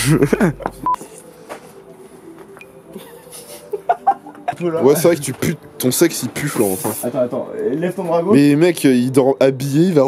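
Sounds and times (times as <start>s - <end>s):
voices: 3.0s - 10.0s.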